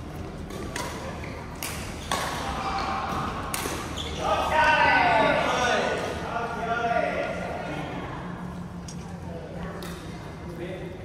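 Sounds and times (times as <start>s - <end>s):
racket hitting shuttlecock: 0.4s - 4.0s.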